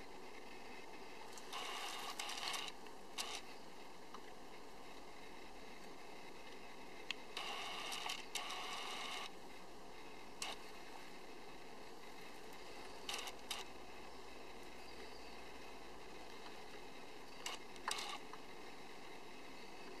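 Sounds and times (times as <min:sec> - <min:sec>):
faint steady hiss: 0:00.0 - 0:20.0.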